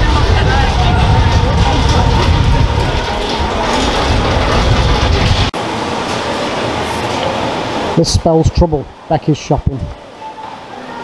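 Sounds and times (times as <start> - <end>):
low rumble: 0.0 - 5.6.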